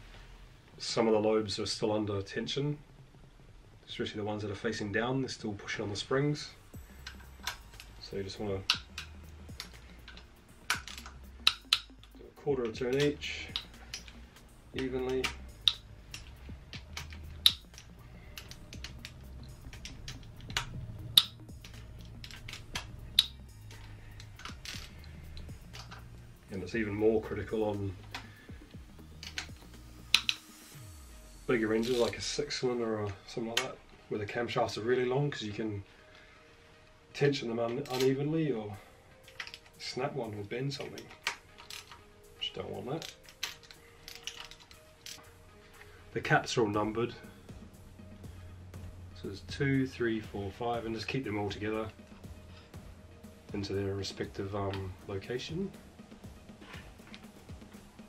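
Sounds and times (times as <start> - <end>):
hand ratchet clicking: 6.9 - 30.6, 40.8 - 42.1.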